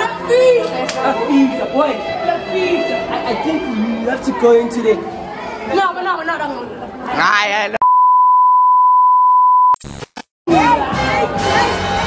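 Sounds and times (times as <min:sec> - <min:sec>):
test-tone beep: 0:07.8 - 0:09.8
glitchy static crackles: 0:09.8 - 0:10.3.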